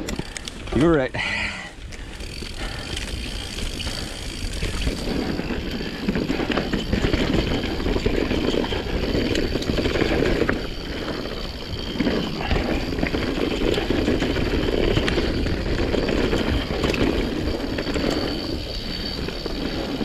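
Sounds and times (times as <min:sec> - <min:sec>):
bike chain and frame rattling: 0:00.0 - 0:20.0
bike tyre noise: 0:00.0 - 0:20.0.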